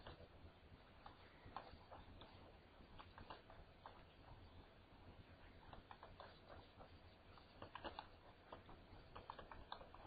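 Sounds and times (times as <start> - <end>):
computer mouse clicks: 0.0 - 0.3, 0.9 - 4.6, 5.6 - 10.0.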